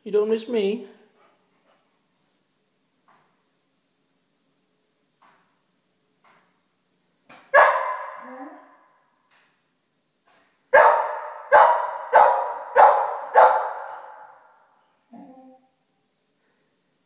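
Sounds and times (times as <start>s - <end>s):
puppy barking with echo: 7.5s - 8.8s, 10.7s - 14.6s.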